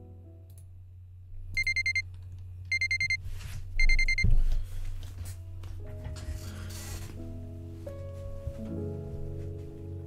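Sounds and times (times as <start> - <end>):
electronic alarm beeping: 1.6 - 2.0, 2.7 - 3.2, 3.8 - 4.3.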